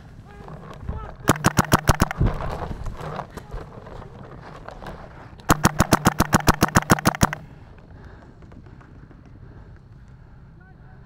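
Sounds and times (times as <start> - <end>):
paintball marker firing: 1.2 - 2.6, 5.5 - 7.6.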